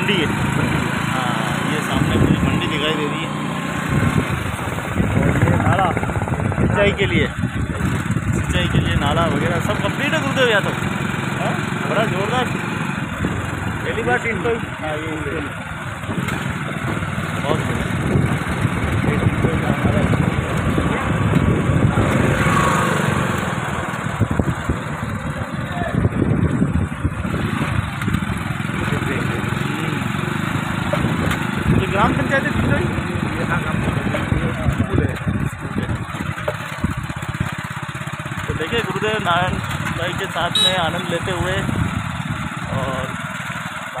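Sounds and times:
motorcycle engine running: 0.0 - 44.0
road and air noise: 0.0 - 44.0.

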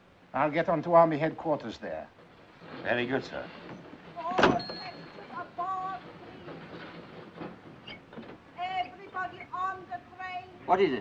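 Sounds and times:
film soundtrack hiss: 0.0 - 11.0.

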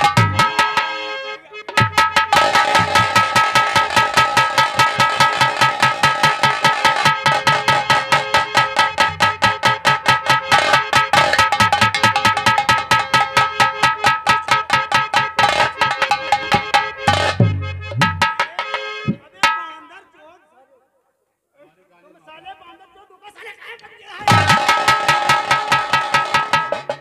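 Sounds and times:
fast drumming: 0.0 - 0.8, 1.7 - 19.7, 24.2 - 27.0
steady held tone: 1.6 - 19.6.

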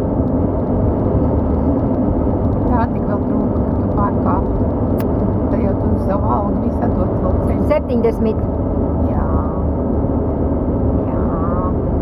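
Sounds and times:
car interior engine and tyre rumble: 0.0 - 12.0.

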